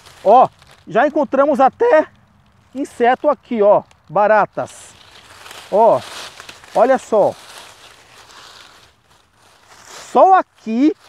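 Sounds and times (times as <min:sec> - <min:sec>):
dry leaves rustling: 0:00.0 - 0:11.0.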